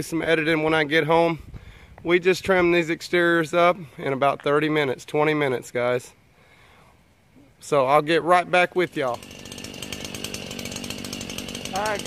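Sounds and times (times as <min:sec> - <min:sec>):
two-stroke power tool engine: 0:08.6 - 0:12.0
person speaking: 0:11.7 - 0:12.0.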